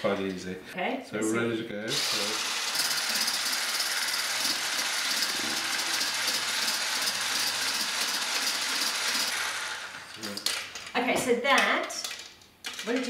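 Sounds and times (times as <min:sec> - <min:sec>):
hand blender whisking in metal bowl: 0:01.9 - 0:10.4.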